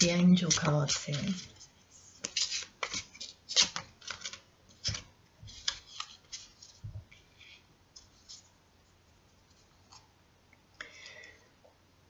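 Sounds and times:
cards shuffled by hand: 0.0 - 6.8.

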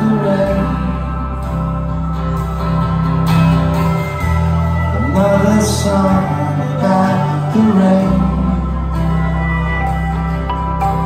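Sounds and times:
live rock band playing: 0.0 - 11.0
strummed guitars: 0.0 - 11.0.

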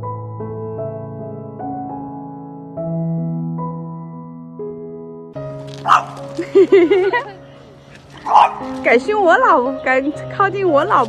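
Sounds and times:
background music: 0.0 - 11.0
dog barking: 5.8 - 6.3, 8.1 - 8.8.

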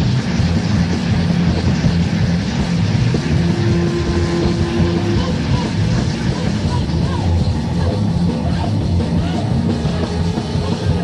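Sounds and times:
live rock band drone: 0.0 - 11.0.

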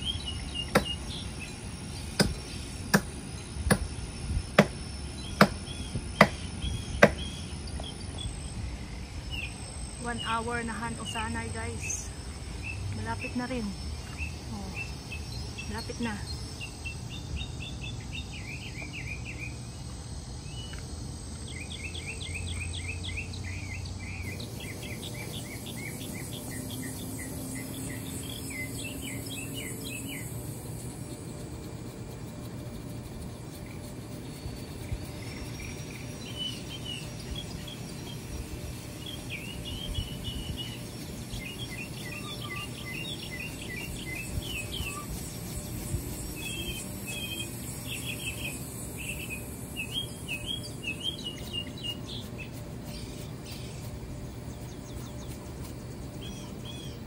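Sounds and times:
insect buzz: 0.0 - 57.0
small birds chirping: 0.0 - 57.0
axe chopping tree trunk: 0.7 - 1.0, 2.2 - 3.1, 3.7 - 3.9, 4.6 - 4.8, 5.4 - 5.6, 7.0 - 7.2.

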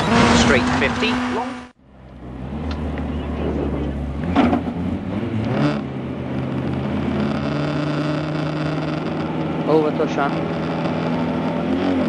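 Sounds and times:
car engine running steadily: 0.0 - 12.0.

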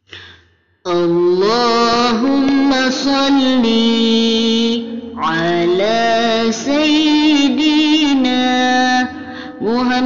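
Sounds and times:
devotional singing: 0.9 - 10.0.

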